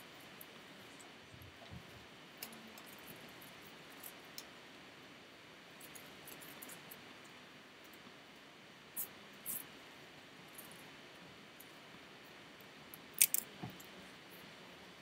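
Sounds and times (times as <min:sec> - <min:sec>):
small clicks: 0:12.9 - 0:13.9.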